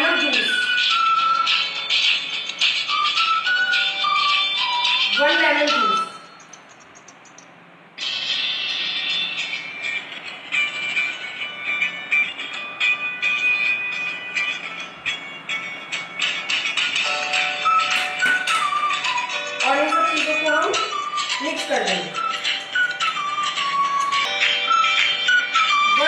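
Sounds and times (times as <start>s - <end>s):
background music with busy beat: 0.0s - 7.4s, 8.0s - 26.0s.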